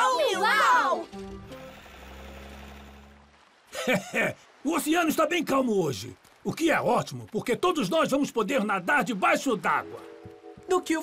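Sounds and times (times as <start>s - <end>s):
faint hiss: 1.2s - 11.0s.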